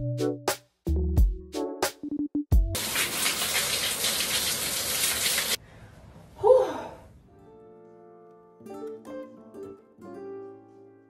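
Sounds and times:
electronic music with drum hits: 0:00.0 - 0:02.8
shower spray hissing: 0:02.8 - 0:05.6.

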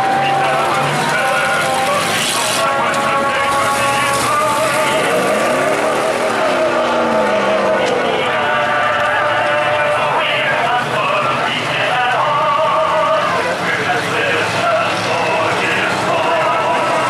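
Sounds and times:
engine revving: 0:00.0 - 0:17.0
race car engines running: 0:00.0 - 0:17.0.

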